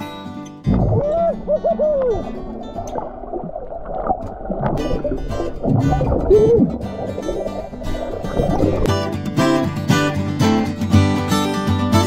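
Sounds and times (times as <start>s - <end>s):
underwater rumble and bubbling: 0.6s - 9.0s
person hooting underwater: 0.7s - 2.8s, 4.8s - 7.7s.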